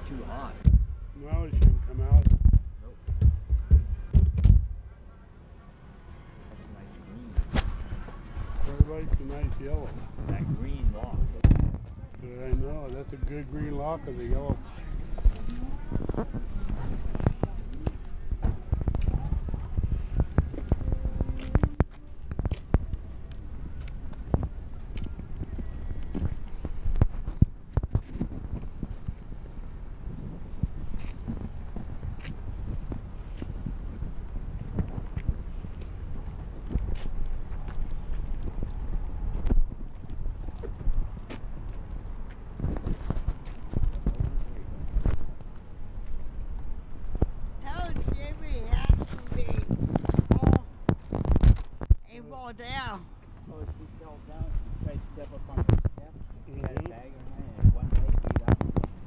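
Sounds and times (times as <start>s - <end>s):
low rumble: 0.0s - 5.0s
knocks and rattles: 1.6s - 4.7s.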